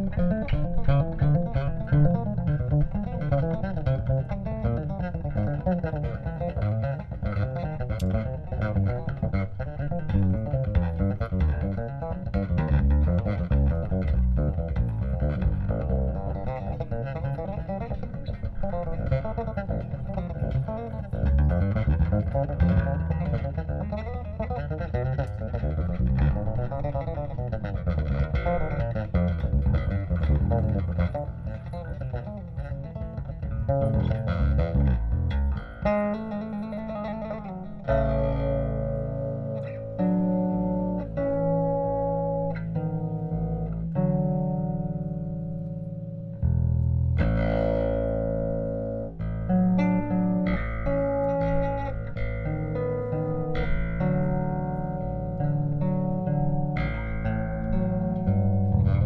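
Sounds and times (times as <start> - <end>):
bass guitar plucked notes: 0.0 - 59.0.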